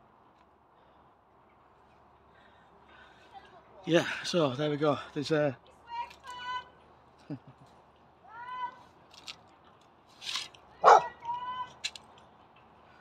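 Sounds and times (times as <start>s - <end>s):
dogs barking and yelping: 10.8s - 11.1s.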